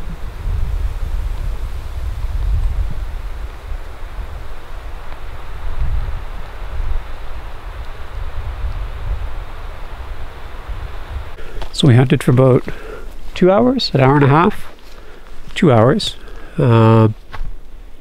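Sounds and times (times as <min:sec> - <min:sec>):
wind buffeting microphone: 0:00.0 - 0:16.6
rustling hiss: 0:00.0 - 0:18.0.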